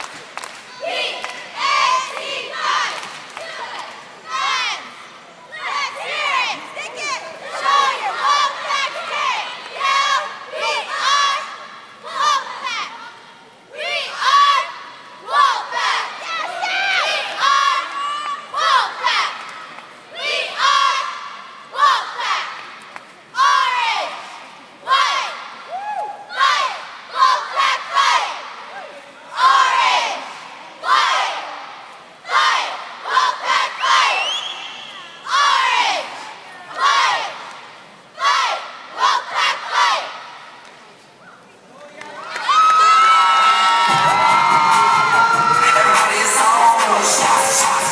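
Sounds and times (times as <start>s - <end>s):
cheerleaders chanting in unison: 0.6s - 40.6s, 43.7s - 47.9s
spectators cheering: 42.0s - 47.9s.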